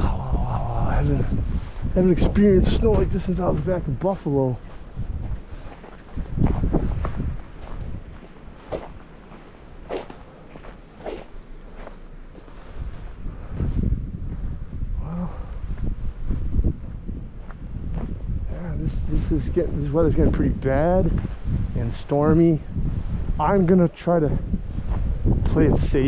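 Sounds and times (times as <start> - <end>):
wind rumble on microphone: 0.0 - 26.0
footsteps in snow: 1.6 - 13.9.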